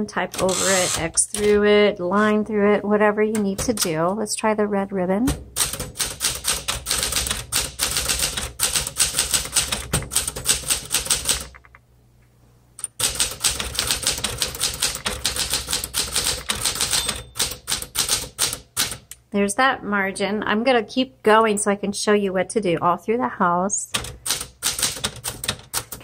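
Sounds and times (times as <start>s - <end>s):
manual typewriter typing: 0.0s - 2.4s, 3.3s - 4.1s, 5.6s - 11.8s, 12.8s - 19.1s, 23.9s - 26.0s.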